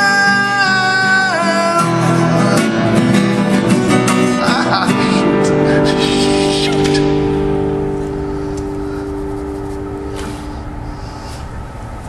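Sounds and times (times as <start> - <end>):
acoustic guitar chord ringing: 0.0 - 12.0
low steady rumble: 7.0 - 12.0.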